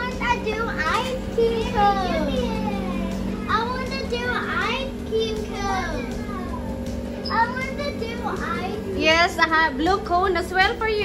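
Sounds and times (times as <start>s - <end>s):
steady hum: 0.0s - 11.0s
young children chattering: 0.0s - 11.0s.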